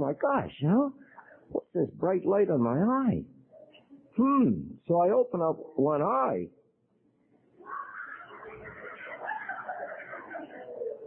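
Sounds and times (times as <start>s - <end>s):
audience laughing: 7.6s - 11.0s.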